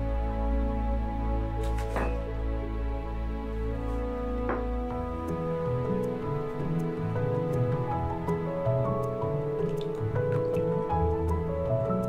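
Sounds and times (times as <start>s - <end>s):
gentle background music: 0.0s - 12.0s
melted butter dripping and splashing: 6.7s - 12.0s.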